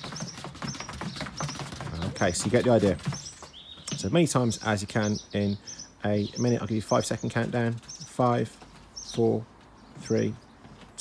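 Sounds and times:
shoes patting on wooden decking: 0:00.0 - 0:05.4, 0:06.4 - 0:11.0.

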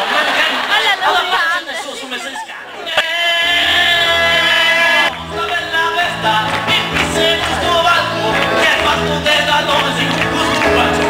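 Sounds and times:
chatter of voices: 0:00.0 - 0:06.2.

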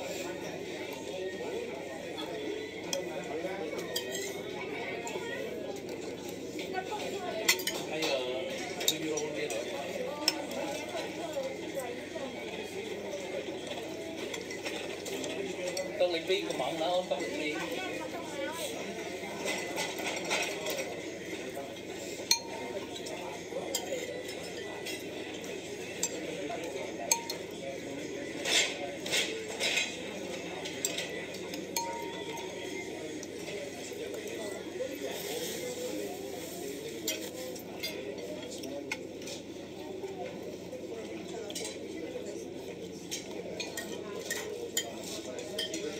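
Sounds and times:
murmur of restaurant chatter: 0:00.0 - 0:45.9
cutlery and dishes clinking: 0:02.2 - 0:12.0, 0:13.2 - 0:17.8, 0:18.7 - 0:45.9.

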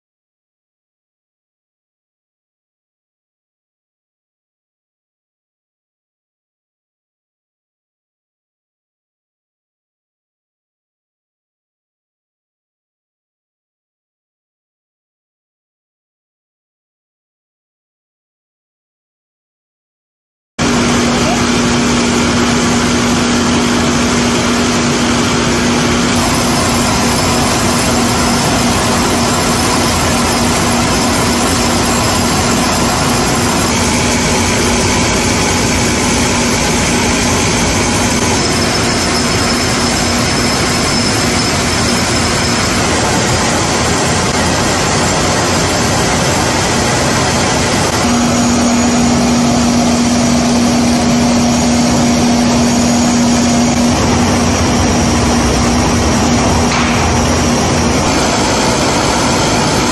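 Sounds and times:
carton machine running: 0:20.6 - 0:59.9
low machine hum: 0:20.6 - 0:59.9.

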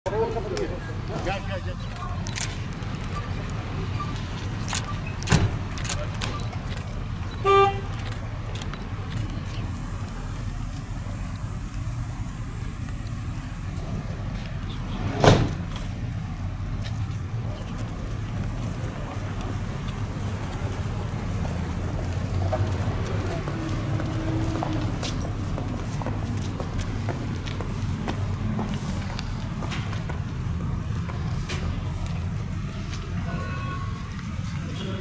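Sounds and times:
traffic rumble: 0:00.1 - 0:35.0
short car horn toot: 0:07.4 - 0:07.9.

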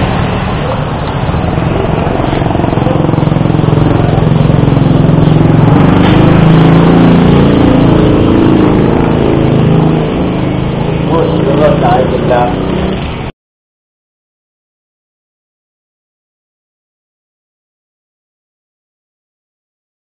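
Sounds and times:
engine running: 0:00.0 - 0:13.3.

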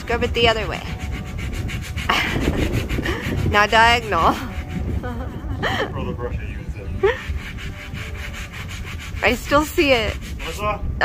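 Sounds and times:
brush scrubbing wood: 0:00.0 - 0:05.5, 0:07.0 - 0:10.7.

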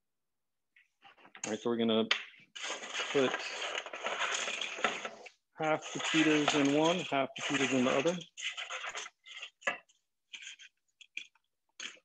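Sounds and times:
dry scratches and clatters: 0:02.5 - 0:12.0
chips scraped off metal pan: 0:02.6 - 0:09.7.

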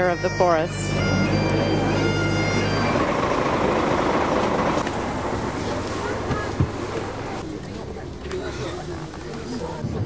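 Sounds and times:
people talking: 0:00.0 - 0:02.8, 0:05.4 - 0:10.0
coach engine running: 0:00.0 - 0:09.8.

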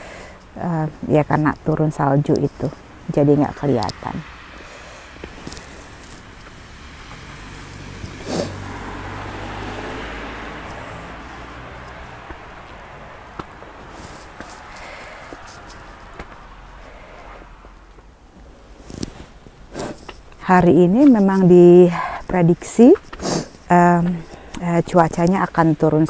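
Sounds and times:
low engine hum: 0:02.5 - 0:18.6
tyre hiss on wet road: 0:04.2 - 0:17.7, 0:23.1 - 0:23.7.

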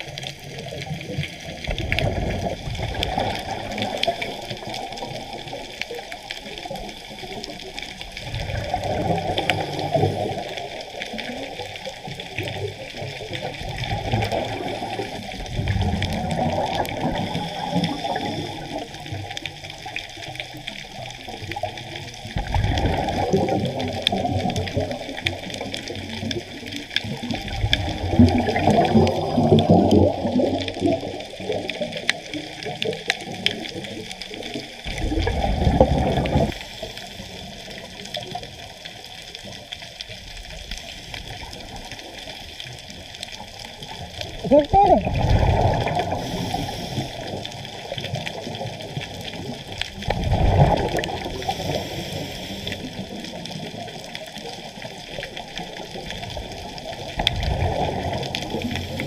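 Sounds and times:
exhaled bubbles underwater: 0:00.0 - 0:59.0
diver inhaling through regulator: 0:17.2 - 0:18.9, 0:45.6 - 0:47.5, 0:51.2 - 0:53.2, 0:58.6 - 0:59.0.

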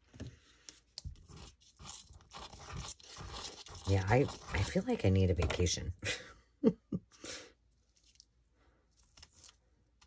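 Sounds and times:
glue bottle scraping on paper: 0:01.0 - 0:05.6.

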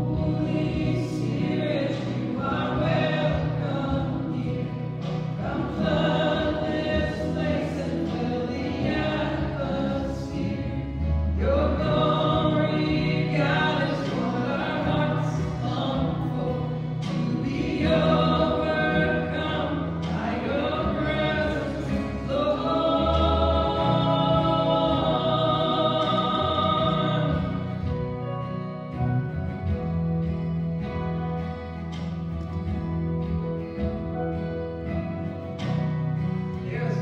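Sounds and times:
church hymn singing: 0:00.0 - 0:37.0
instrumental accompaniment: 0:00.0 - 0:37.0.

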